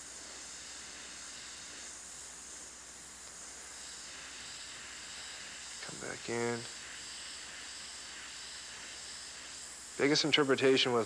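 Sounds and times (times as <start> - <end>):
airbrush spraying hiss: 0.0 - 11.0.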